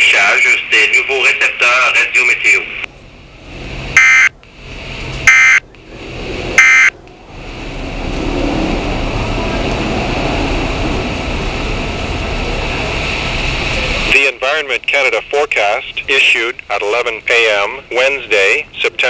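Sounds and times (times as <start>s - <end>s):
rushing static noise: 0.0s - 19.0s
screeching digital data tones: 5.3s - 5.6s, 6.6s - 6.9s.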